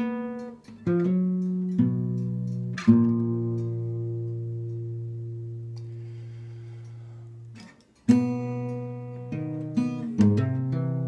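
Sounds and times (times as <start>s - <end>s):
guitar chord ringing: 0.0s - 11.0s.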